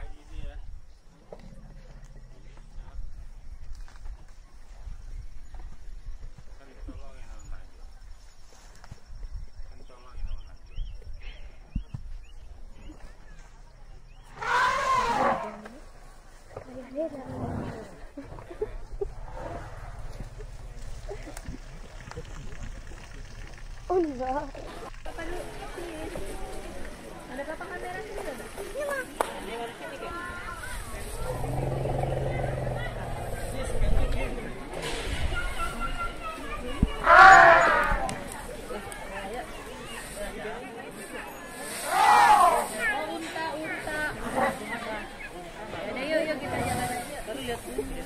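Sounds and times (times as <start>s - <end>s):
elephant trumpeting: 14.4s - 15.6s, 31.3s - 34.1s, 37.0s - 38.0s
people talking: 16.5s - 48.0s.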